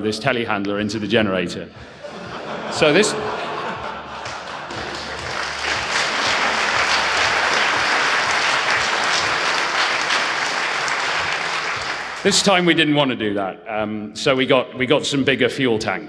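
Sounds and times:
audience applauding: 2.9s - 12.8s.

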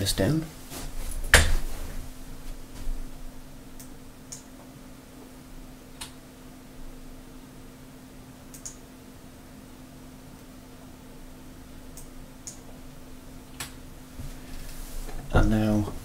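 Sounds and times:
low electrical hum: 0.0s - 16.0s
keyboard and mouse clicks: 3.8s - 4.5s, 8.5s - 8.8s, 12.0s - 12.7s.

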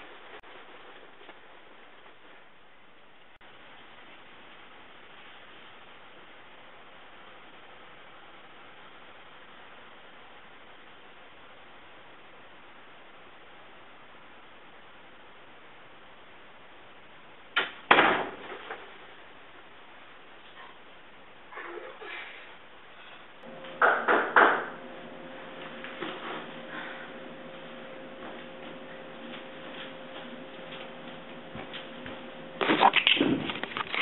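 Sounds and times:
steady hiss: 0.0s - 32.7s
faint hum: 0.0s - 34.0s.

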